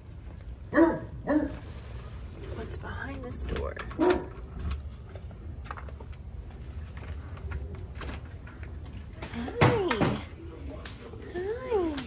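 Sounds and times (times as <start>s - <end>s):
door opening with clatter: 3.2s - 6.1s.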